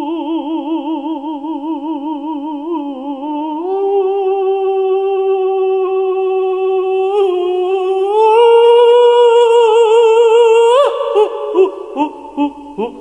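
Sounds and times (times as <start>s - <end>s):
man singing unaccompanied: 0.0s - 13.0s.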